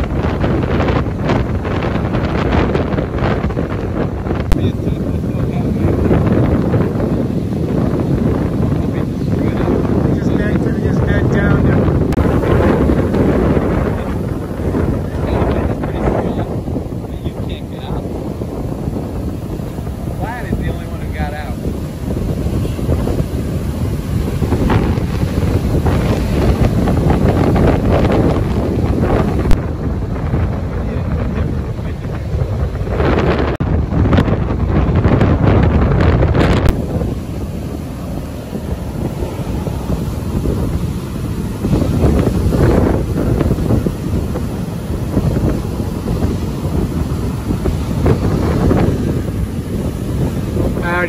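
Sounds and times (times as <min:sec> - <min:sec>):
heavy breaking surf: 0:00.0 - 0:51.0
storm wind buffeting microphone: 0:00.0 - 0:51.0.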